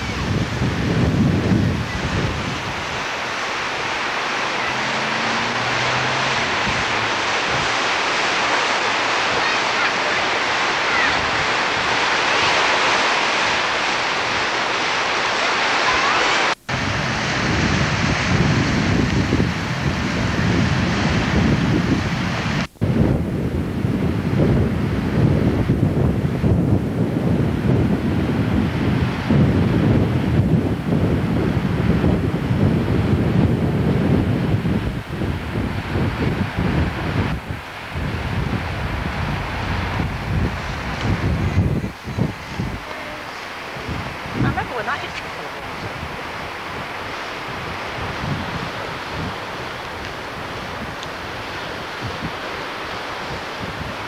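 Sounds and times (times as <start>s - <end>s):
wind buffeting microphone: 0.0s - 15.3s, 16.7s - 54.0s
small waves breaking on shore: 0.0s - 54.0s.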